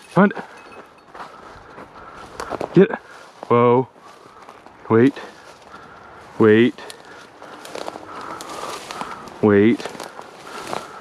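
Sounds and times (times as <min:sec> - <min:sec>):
footsteps through dry grass: 0:00.0 - 0:11.0.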